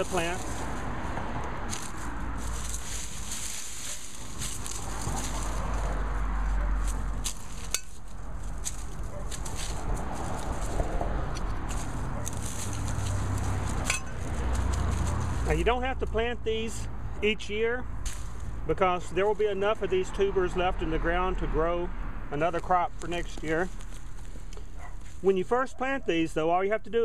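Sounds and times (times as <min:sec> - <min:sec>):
dry stalks and leaves crackling: 0:00.0 - 0:16.2, 0:18.0 - 0:20.8, 0:22.3 - 0:25.8.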